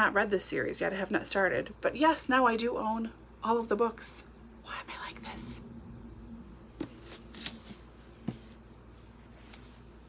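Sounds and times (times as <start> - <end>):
paper shuffling: 6.8 - 10.0.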